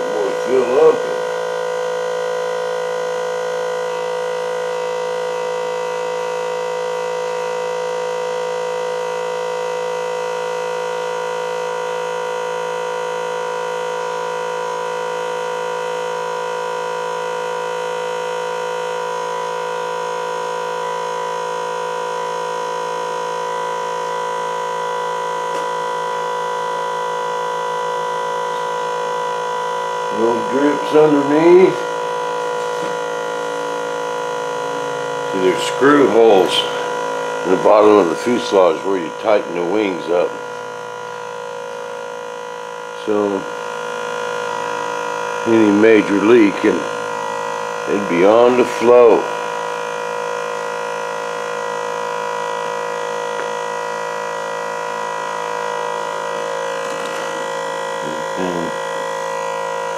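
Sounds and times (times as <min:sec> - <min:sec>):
electric fuel pump humming: 0:00.0 - 0:59.9.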